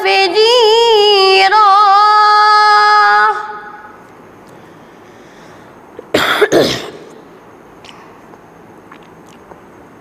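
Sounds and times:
person coughing: 6.0 - 7.1.

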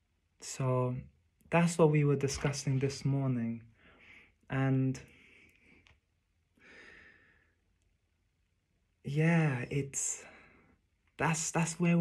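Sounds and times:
faint exhale: 6.6 - 7.6.

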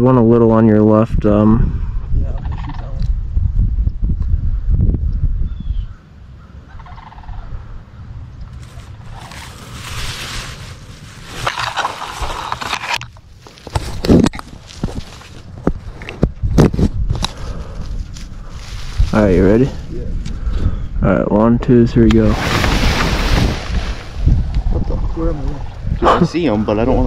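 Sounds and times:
geese calling: 5.6 - 10.0
dry straw rustling: 8.5 - 15.6, 17.3 - 19.9, 22.3 - 24.4
low rumble: 16.4 - 27.0.

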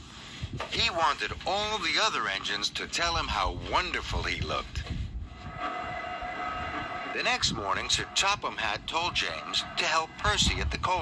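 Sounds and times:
low rumble: 4.5 - 11.0.

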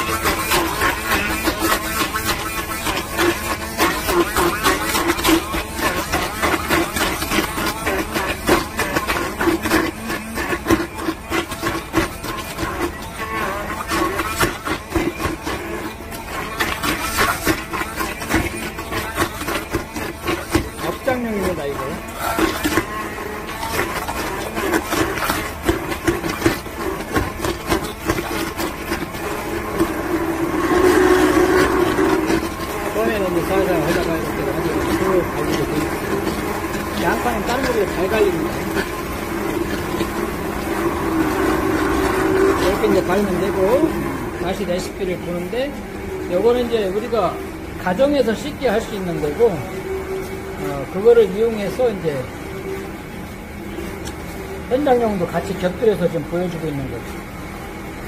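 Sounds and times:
hand blender motor hum: 0.0 - 53.0.

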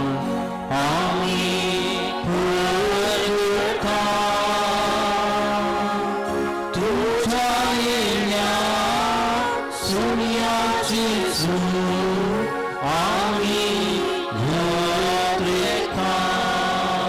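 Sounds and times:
person singing liturgical chant: 0.0 - 17.0.

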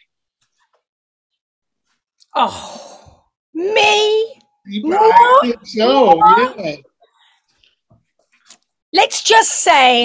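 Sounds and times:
woman speaking: 3.6 - 6.7, 9.0 - 10.0.

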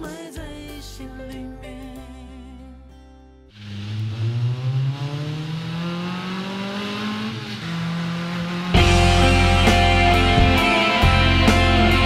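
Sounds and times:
car engine revving: 3.6 - 12.0
loud full band playing: 8.8 - 12.0.

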